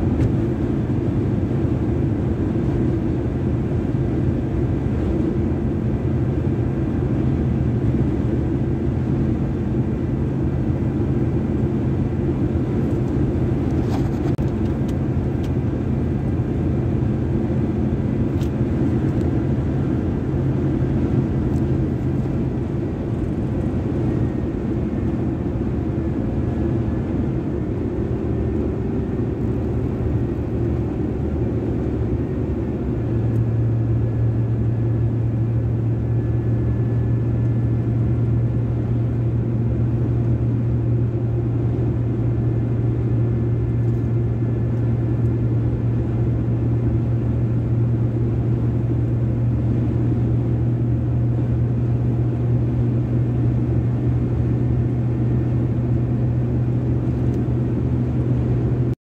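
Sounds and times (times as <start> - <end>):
low hum: 0.0 - 59.0
tyres and engine drone: 0.0 - 59.0.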